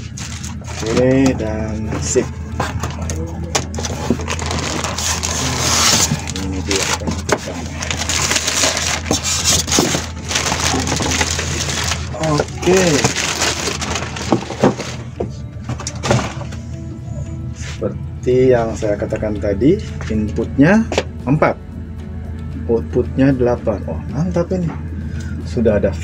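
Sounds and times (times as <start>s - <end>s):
plastic wrapping crinkling: 0.0s - 1.3s, 3.6s - 15.2s
cardboard and foam scraping: 3.8s - 15.1s.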